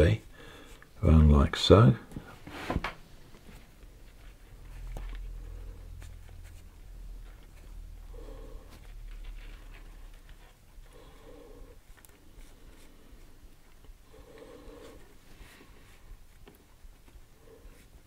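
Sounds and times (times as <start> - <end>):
cord rubbing and rustling: 2.1 - 18.0.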